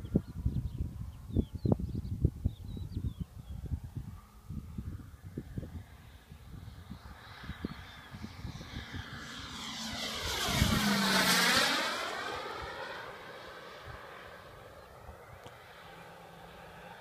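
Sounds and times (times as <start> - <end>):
model jet flyby: 0.0 - 17.0.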